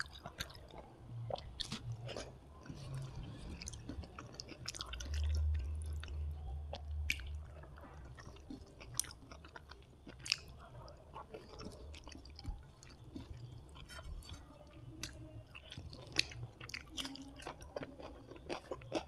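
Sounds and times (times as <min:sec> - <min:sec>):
close chewing with mouth clicks: 0:00.0 - 0:19.0.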